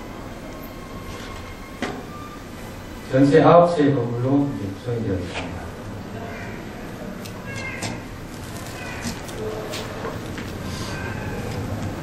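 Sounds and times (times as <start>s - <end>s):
room and sound-system hiss: 0.0s - 12.0s.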